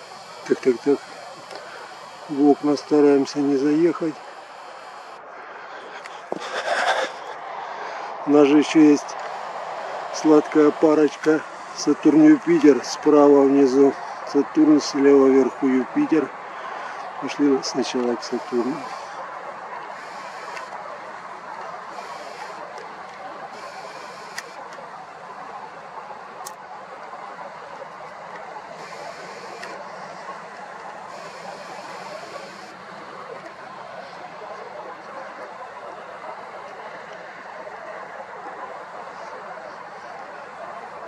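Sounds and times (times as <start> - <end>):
distant city traffic hum: 0.0 - 41.0
faint high-pitched whirs: 0.0 - 41.0.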